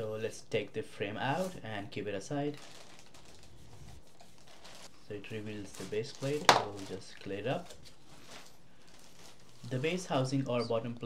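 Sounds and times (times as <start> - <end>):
rustle of handling: 2.6 - 10.6.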